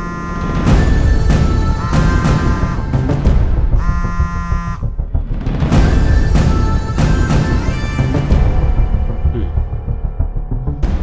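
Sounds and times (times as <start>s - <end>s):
phone buzzing ring tone: 0.0s - 0.7s
dark film score with drums: 0.0s - 11.0s.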